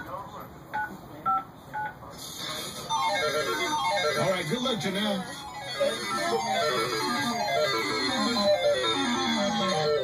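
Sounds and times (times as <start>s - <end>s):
music with falling notes: 5.4s - 10.0s.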